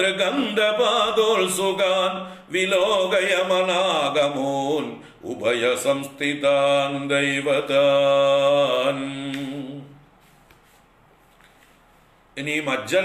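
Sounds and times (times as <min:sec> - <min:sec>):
man chanting melodically: 0:00.0 - 0:10.0, 0:12.4 - 0:13.0.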